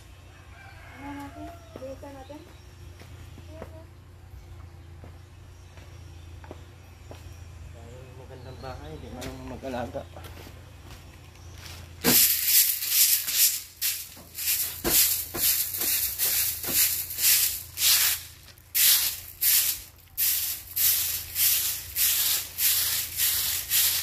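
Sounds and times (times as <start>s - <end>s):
stick broom sweeping ground: 11.6s - 24.0s.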